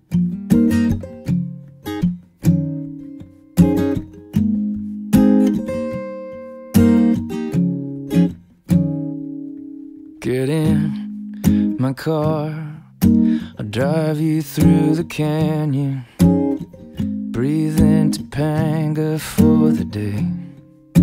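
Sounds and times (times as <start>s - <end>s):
acoustic guitar strumming chords: 0.0s - 21.0s.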